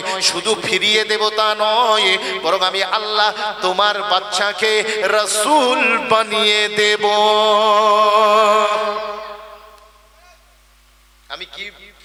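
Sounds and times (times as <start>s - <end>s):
echo of chanting: 0.0s - 10.4s
man preaching over loudspeaker: 0.0s - 10.5s, 11.3s - 12.0s.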